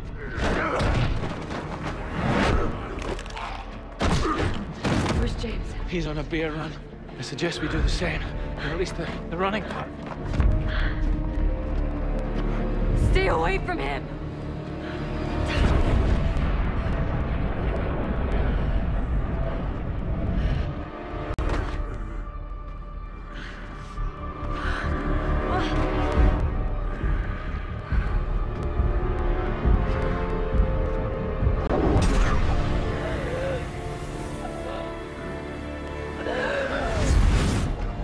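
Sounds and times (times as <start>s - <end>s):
tense film score: 0.0s - 38.0s.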